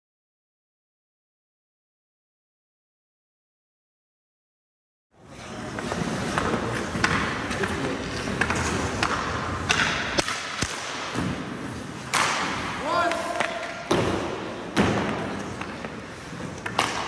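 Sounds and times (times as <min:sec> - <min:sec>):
pucks hitting pads and boards: 0:05.2 - 0:17.0
skate blades scraping ice: 0:05.2 - 0:17.0
hockey sticks cracking on pucks: 0:05.5 - 0:17.0.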